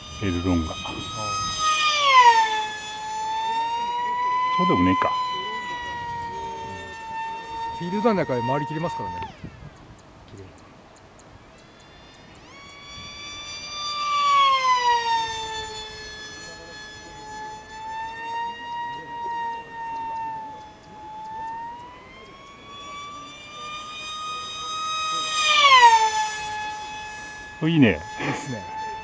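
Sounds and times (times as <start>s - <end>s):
model jet motor whining: 0.0s - 29.0s.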